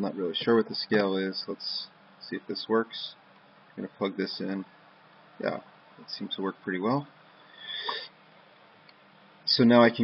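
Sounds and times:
breath or sniff into microphone: 0:07.4 - 0:08.2.

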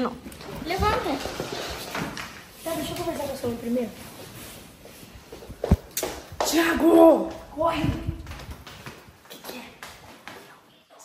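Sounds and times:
rustling and soft bumps: 0:00.2 - 0:10.6.

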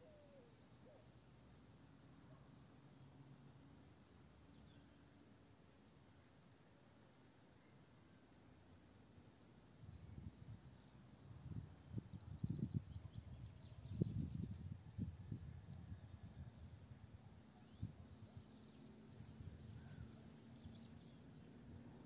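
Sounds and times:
high bird chirps: 0:18.6 - 0:21.2.

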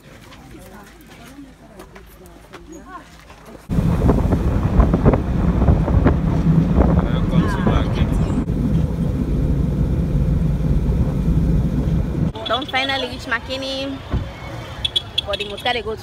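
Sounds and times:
tyres on road: 0:00.0 - 0:16.0
vehicle engine rumble: 0:03.6 - 0:16.0
wind on microphone: 0:03.7 - 0:12.3.

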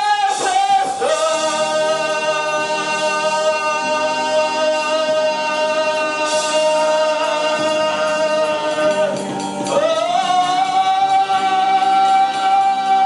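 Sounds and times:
electronic keyboard chords: 0:00.0 - 0:13.0
man singing long notes: 0:00.0 - 0:13.0.

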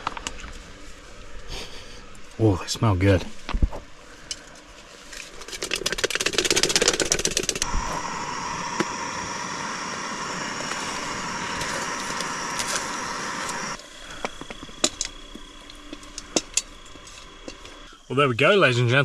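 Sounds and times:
fast crackling: 0:05.3 - 0:13.8
gas stove burner hissing: 0:07.6 - 0:18.0.

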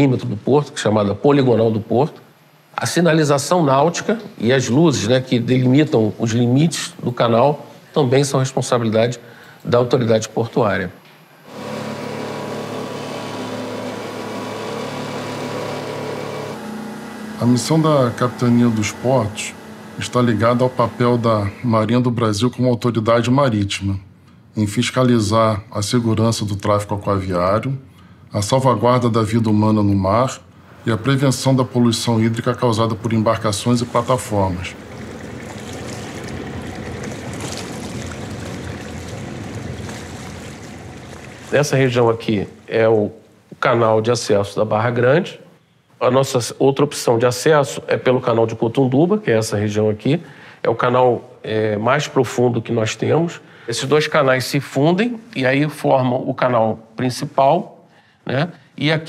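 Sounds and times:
boat engine hum: 0:11.5 - 0:21.9, 0:30.7 - 0:42.7
water rushing: 0:33.0 - 0:42.6.

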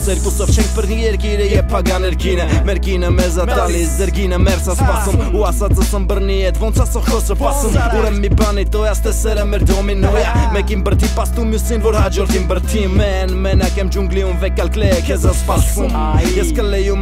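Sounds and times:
rapping over a beat: 0:00.0 - 0:17.0.

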